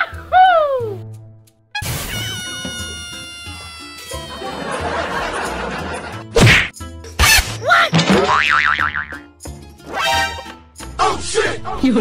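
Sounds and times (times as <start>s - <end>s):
cartoon whacks: 6.3s - 9.1s
wobbling boing: 8.2s - 9.2s.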